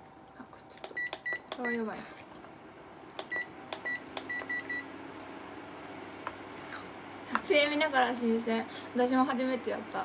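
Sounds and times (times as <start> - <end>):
faint steady hum: 0.0 - 10.0
cooktop control panel beeping: 0.9 - 1.8, 3.2 - 4.9.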